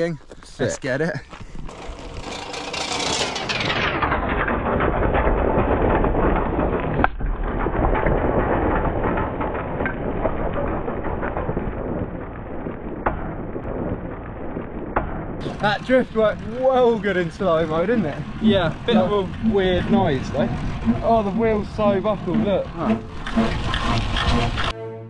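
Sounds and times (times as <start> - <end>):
tyres crunching on gravel: 0.0 - 3.8, 15.4 - 24.7
sharp crack: 1.7 - 24.7.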